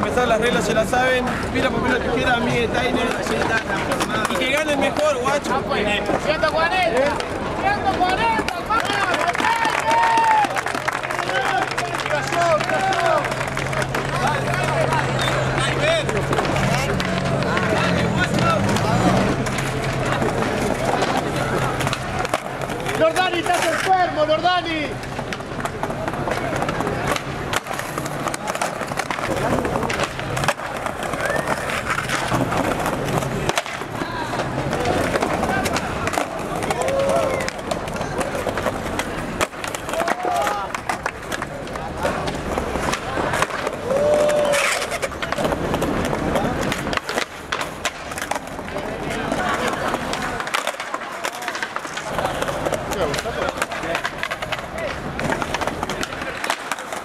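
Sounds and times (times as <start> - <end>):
crowd voices and shouts: 0.0 - 57.0
skateboards clacking: 0.0 - 57.0
skateboards rolling on stone: 0.0 - 57.0.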